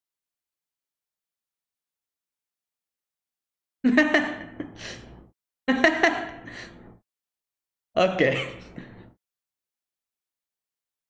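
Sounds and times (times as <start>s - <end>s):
man laughing: 8.2s - 8.9s.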